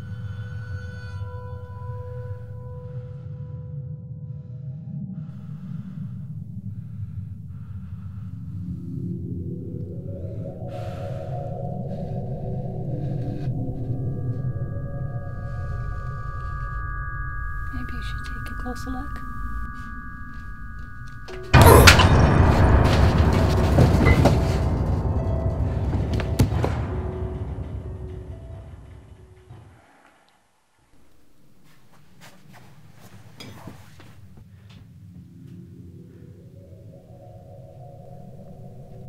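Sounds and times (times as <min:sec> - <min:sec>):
low rumbling drone: 0:00.0 - 0:29.7, 0:34.8 - 0:39.0
slowly rising tones: 0:08.3 - 0:29.6
rattling clattering noise: 0:19.7 - 0:29.9.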